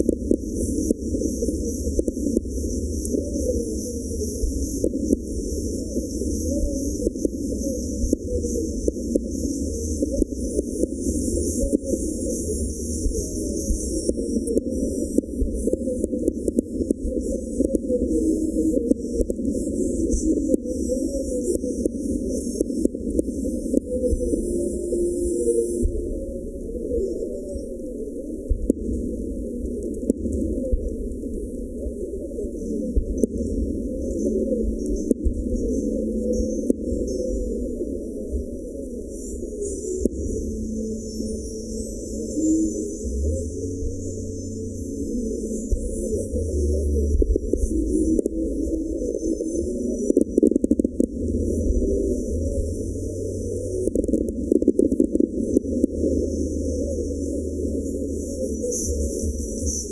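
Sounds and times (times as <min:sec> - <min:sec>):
muffled music: 0:00.0 - 0:59.9.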